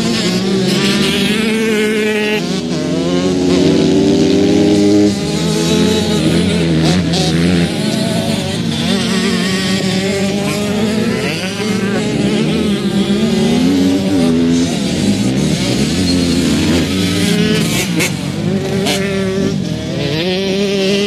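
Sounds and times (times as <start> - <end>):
motocross bike engine revving: 0.0 - 21.0.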